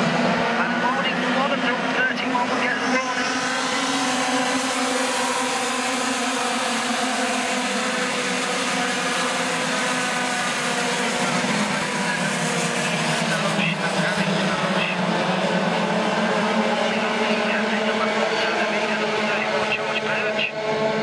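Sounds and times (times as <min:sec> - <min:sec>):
kart engines racing: 0:00.0 - 0:21.0.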